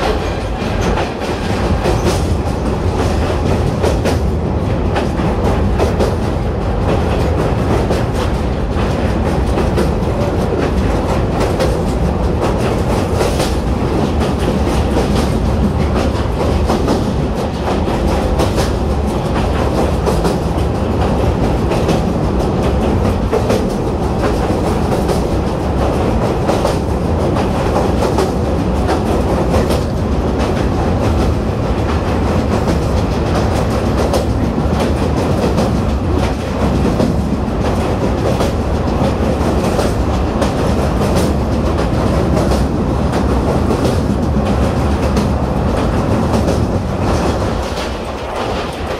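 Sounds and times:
train wheels rumbling on rails: 0.0 - 48.9.

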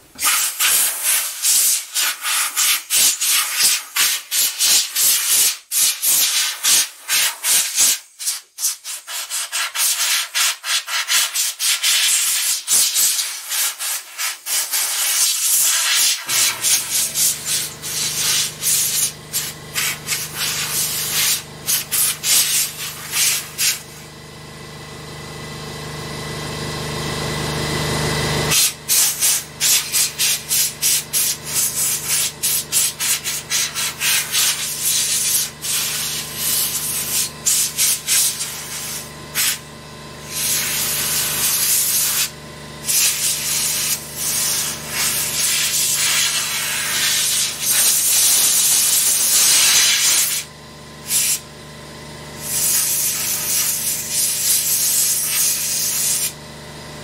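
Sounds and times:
steady low hum: 16.3 - 25.8.

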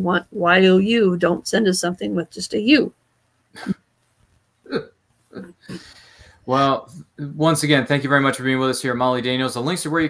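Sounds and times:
person chuckling: 3.6 - 3.8, 4.7 - 6.0.

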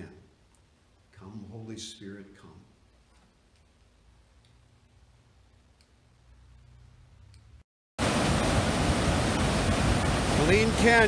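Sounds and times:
waterfall rushing: 8.0 - 11.0.

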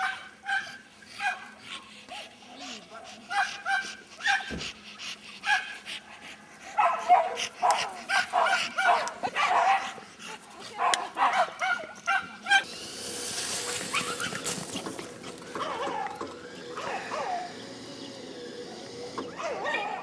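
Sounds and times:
dog barking and yelping: 0.0 - 4.6, 5.4 - 5.9, 6.7 - 12.7, 13.8 - 20.0
steady hiss: 12.7 - 15.2.

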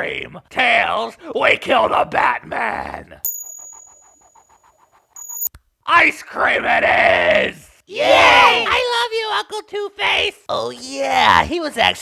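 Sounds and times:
high fluttering ringing: 3.3 - 5.5.

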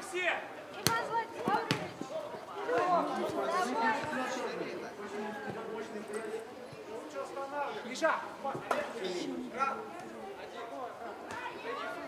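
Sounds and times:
voices calling out and chattering: 0.0 - 12.0.

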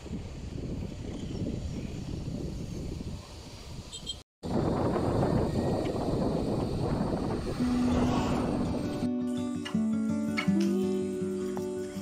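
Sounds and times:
wind buffeting microphone: 0.0 - 9.1
steady low tone: 6.8 - 9.5.

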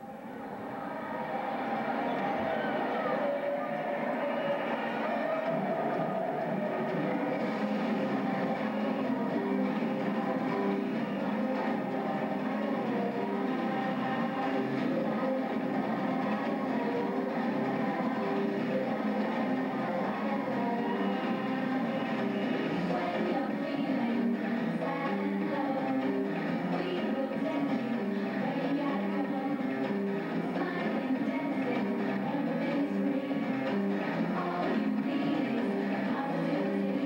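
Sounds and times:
droning song intro over sound system: 3.1 - 26.9.

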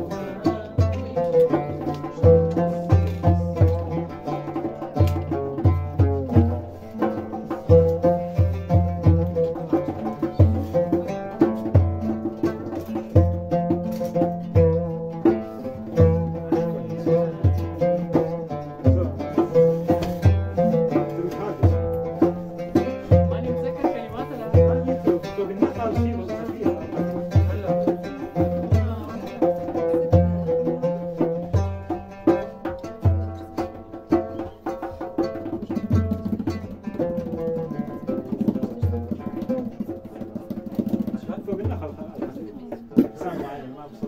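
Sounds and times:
deep low beat: 0.0 - 34.4
oud and acoustic guitar playing: 0.0 - 43.5.

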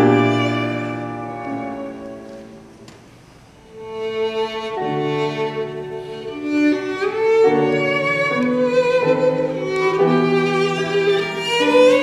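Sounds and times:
violin bowed melody: 0.0 - 2.8, 3.6 - 12.0
grand piano accompaniment: 0.0 - 12.0.

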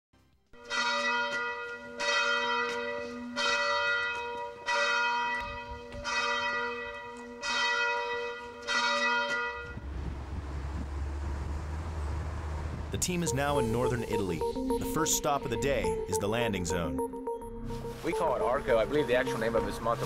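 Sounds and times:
church bell tolling: 0.6 - 9.8.

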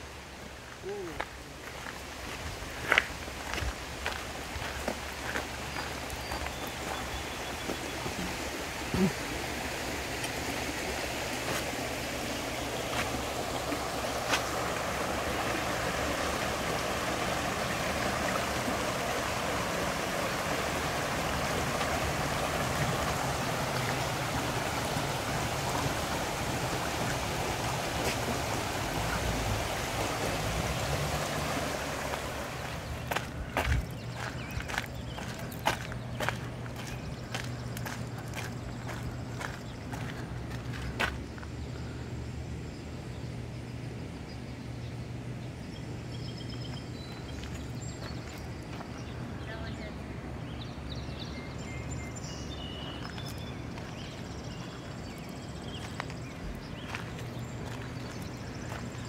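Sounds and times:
creek flowing: 0.0 - 44.1, 45.2 - 59.0.

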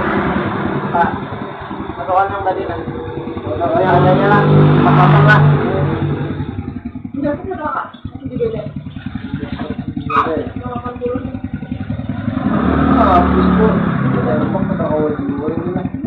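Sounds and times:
indistinct voices: 0.0 - 16.0
motorcycle engine idling: 0.0 - 16.0.

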